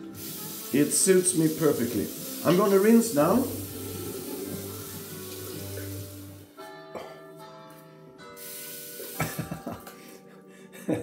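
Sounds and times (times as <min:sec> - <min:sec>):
water running from sink tap: 0:00.0 - 0:06.5, 0:08.4 - 0:09.8
water splashing on face: 0:00.2 - 0:06.4, 0:08.6 - 0:09.8.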